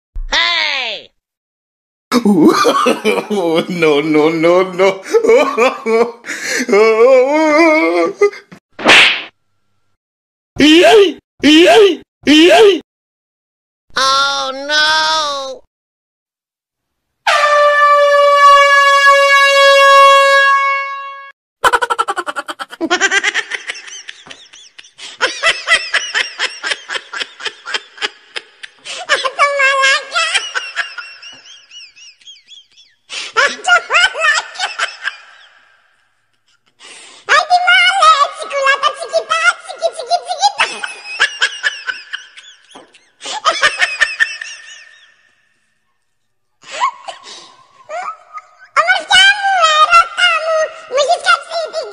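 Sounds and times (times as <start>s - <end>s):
long horn blast: 17.3s - 21.3s.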